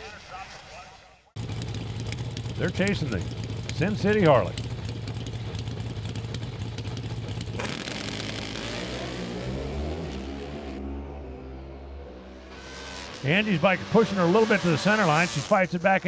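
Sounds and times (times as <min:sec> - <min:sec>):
drag motorcycle engines revving: 0:01.4 - 0:16.0.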